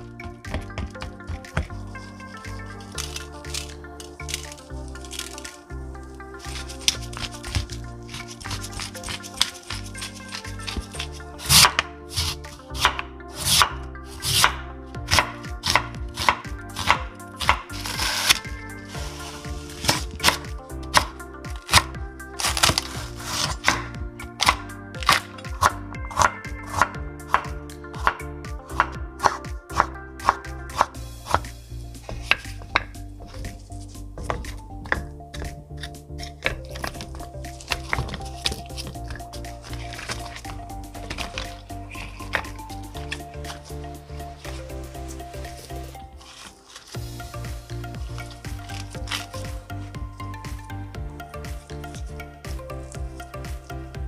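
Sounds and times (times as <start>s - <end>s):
background music: 0.0s - 54.0s
knife chopping on wooden board: 11.4s - 18.4s.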